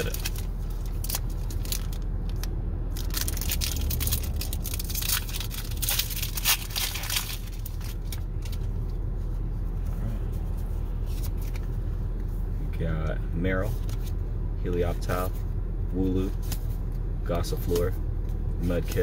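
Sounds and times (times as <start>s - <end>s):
foil wrapper tearing and crinkling: 0.0s - 8.6s
low car cabin hum: 0.0s - 19.0s
cards being handled: 9.8s - 12.3s, 16.3s - 19.0s.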